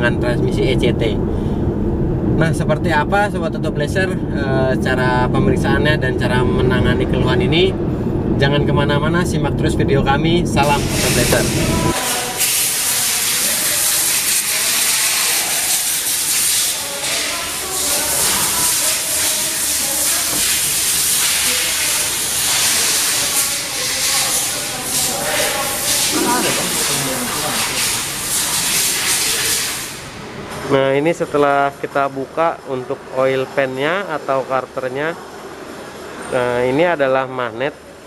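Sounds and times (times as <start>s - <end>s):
nozzle hissing: 10.6s - 30.1s
faint voices: 16.7s - 28.1s.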